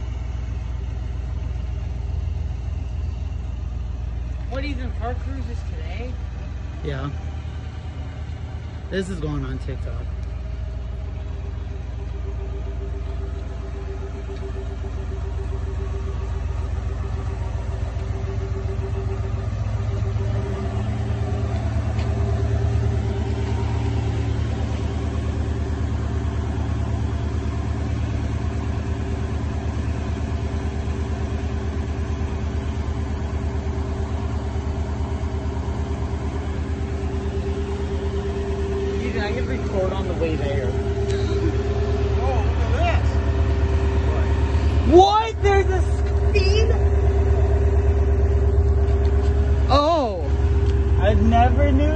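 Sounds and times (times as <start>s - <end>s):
car engine idling: 0.0s - 51.9s.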